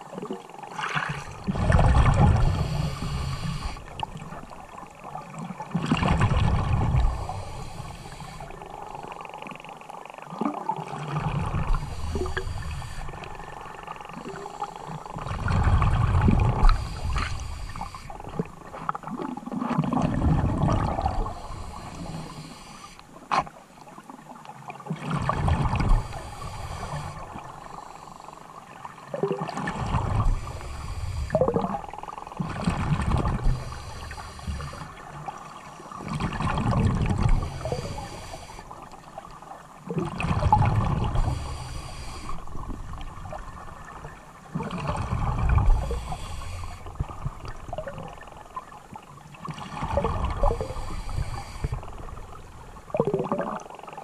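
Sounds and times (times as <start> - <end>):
muffled underwater water noise: 0.0 - 54.0.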